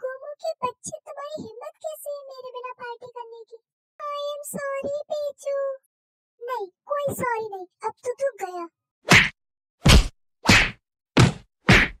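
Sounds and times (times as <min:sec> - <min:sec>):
cartoon punch whacks: 0:09.0 - 0:12.0.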